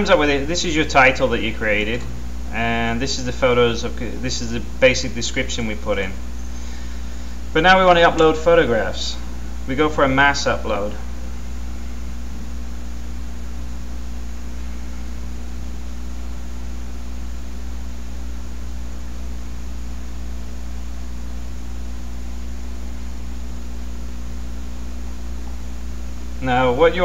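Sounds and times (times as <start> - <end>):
low electrical hum: 0.0 - 27.0.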